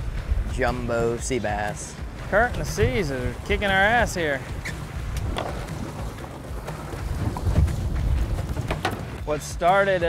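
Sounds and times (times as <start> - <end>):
wind buffeting microphone: 0.0 - 9.3.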